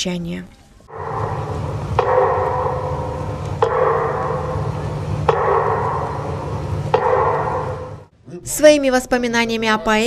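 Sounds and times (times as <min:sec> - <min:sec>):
low steady hum: 0:00.0 - 0:10.0
bell tolling: 0:00.9 - 0:08.1.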